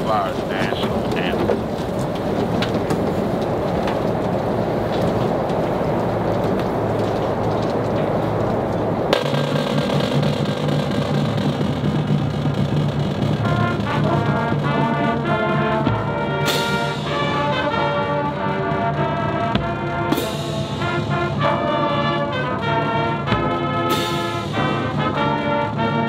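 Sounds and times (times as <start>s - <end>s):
marching band brass chord: 0.0s - 5.2s, 9.0s - 26.0s
stadium crowd murmuring: 0.0s - 26.0s.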